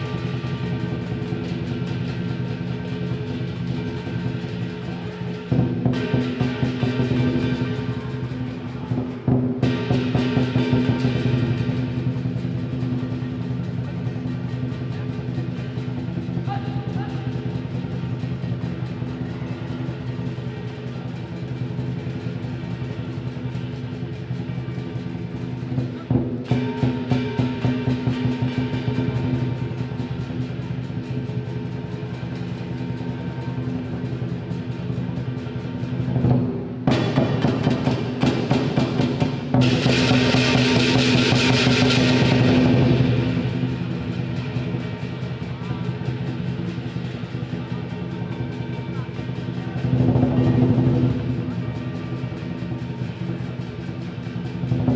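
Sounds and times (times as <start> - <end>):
big drum beating fast: 0.0 - 54.9
cymbals clashing: 0.0 - 54.9.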